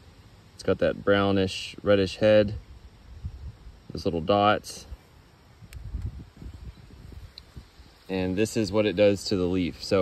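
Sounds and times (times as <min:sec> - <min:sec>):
small click: 0:05.7 - 0:06.2.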